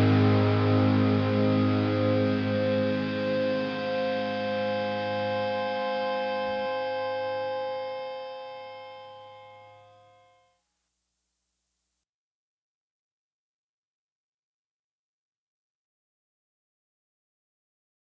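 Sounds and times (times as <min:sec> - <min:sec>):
bass guitar note ringing: 0:00.0 - 0:10.5
electric guitar chord ringing: 0:00.0 - 0:10.5.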